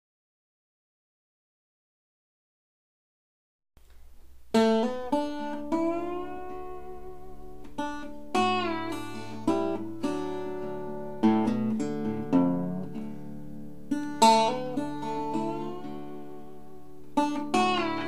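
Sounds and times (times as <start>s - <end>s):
fingerstyle blues guitar: 3.8s - 18.0s.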